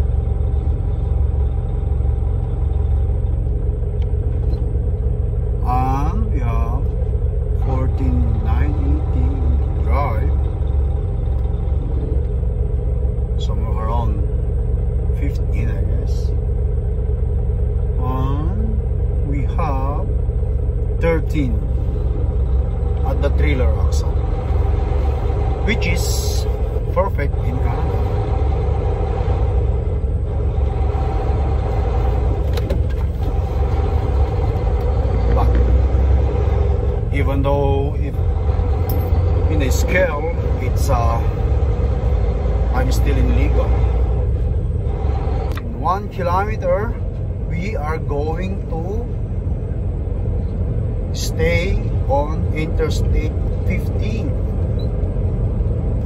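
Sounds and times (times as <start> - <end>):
diesel engine and road rumble: 0.0 - 56.0.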